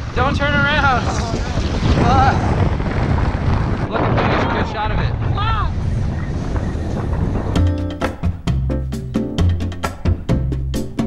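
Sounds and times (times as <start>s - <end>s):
wind buffeting microphone: 0.0s - 11.0s
background music with drums: 7.6s - 11.0s.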